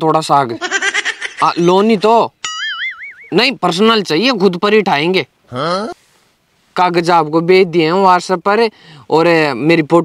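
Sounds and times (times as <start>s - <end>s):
man speaking: 1.4s - 2.4s, 3.3s - 6.0s
cartoon boing sound effect: 2.4s - 3.4s.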